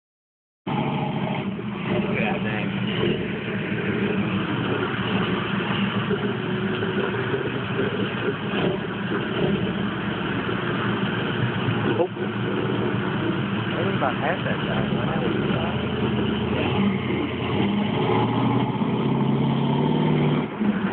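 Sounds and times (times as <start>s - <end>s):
truck engine running under load: 0.7s - 20.9s.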